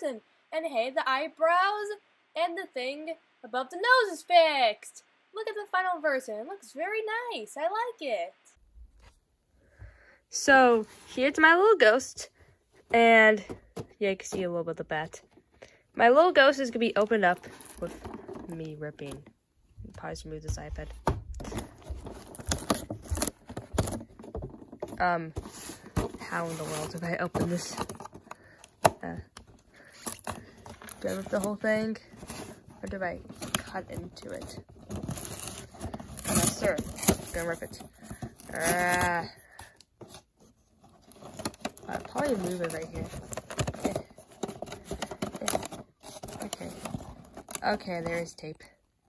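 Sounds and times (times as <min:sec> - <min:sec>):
hands handling cardboard toy box: 0:16.6 - 0:19.4, 0:20.4 - 0:48.6
plastic crinkling: 0:21.4 - 0:48.3.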